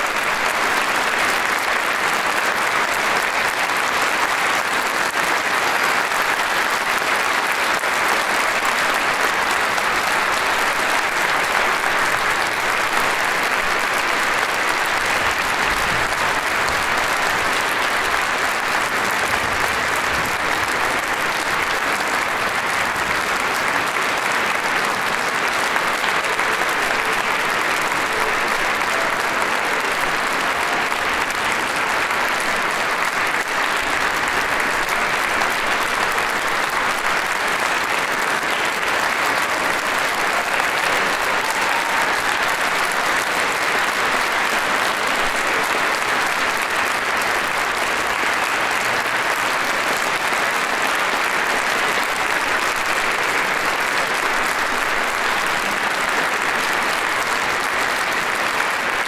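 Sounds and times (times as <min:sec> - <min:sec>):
audience applauding: 0:00.0 - 0:59.0.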